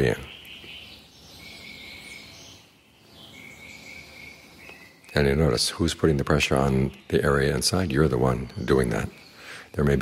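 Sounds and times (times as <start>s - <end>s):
faint insect chirps: 0.0s - 7.3s
insects trilling: 0.0s - 10.0s.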